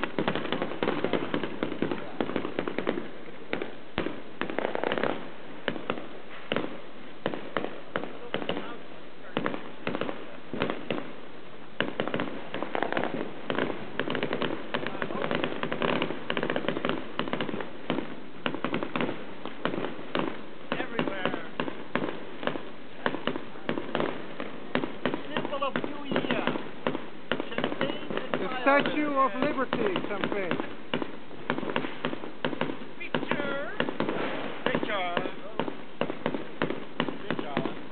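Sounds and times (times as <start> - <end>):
fireworks bangs and crackling: 0.0 - 37.9
voices calling out: 0.0 - 37.9.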